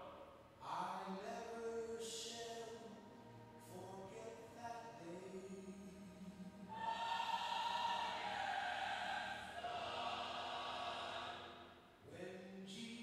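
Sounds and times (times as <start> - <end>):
choir singing church music: 0.0 - 12.5.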